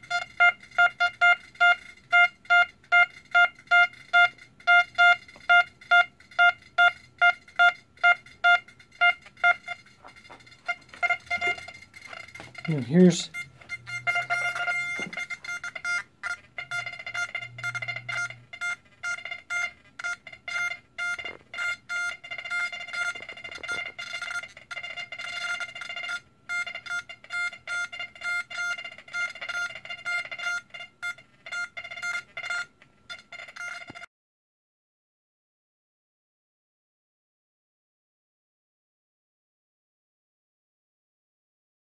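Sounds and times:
metal detector beeping: 0.0s - 34.1s.

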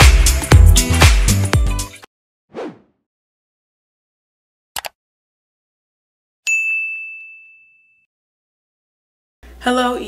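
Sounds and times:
notification bell chime: 6.5s - 8.1s.

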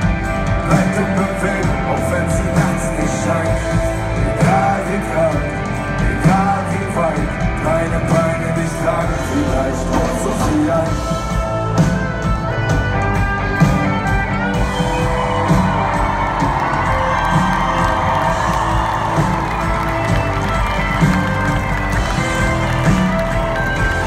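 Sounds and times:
loud live band music: 0.0s - 24.0s.

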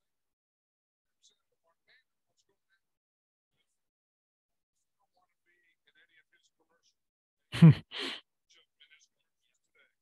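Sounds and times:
man's short vocal sound: 7.6s - 8.2s.

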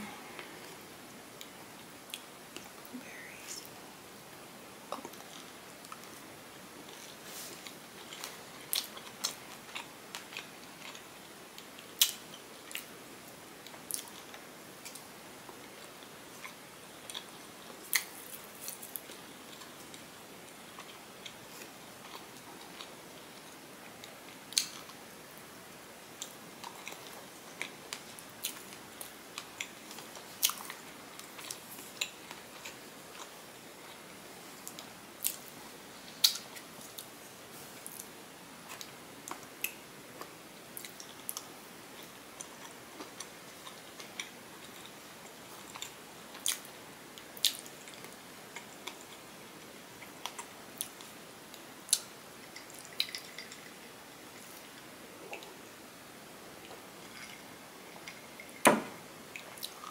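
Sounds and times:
close-up chewing: 6.8s - 12.9s, 26.2s - 34.0s, 38.7s - 55.6s, 56.6s - 58.6s.

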